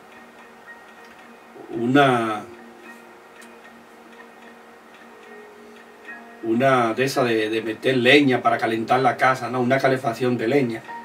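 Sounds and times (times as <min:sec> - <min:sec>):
soft ticks: 0:00.0 - 0:01.5, 0:02.5 - 0:06.2
faint background music: 0:00.0 - 0:11.0.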